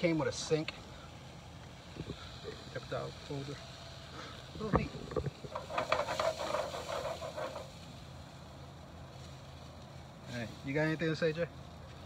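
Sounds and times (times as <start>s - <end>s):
hot dogs sizzling in a frying pan: 0.0s - 12.0s
metal tongs turning food: 4.6s - 7.9s.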